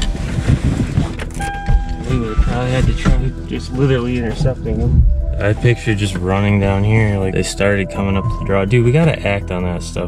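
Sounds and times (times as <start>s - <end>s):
steady tone: 0.0s - 9.1s
thumps against seat and door: 0.5s - 3.4s.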